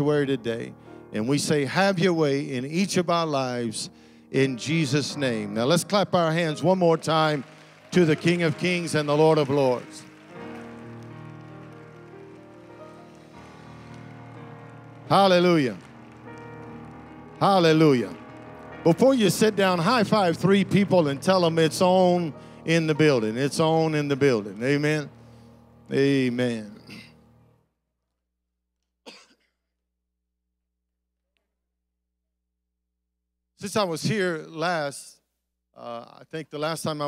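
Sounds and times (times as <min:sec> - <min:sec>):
keyboard playing soft chords: 0:00.0 - 0:27.6
faint applause: 0:05.4 - 0:24.6
man coughing: 0:29.1 - 0:29.5.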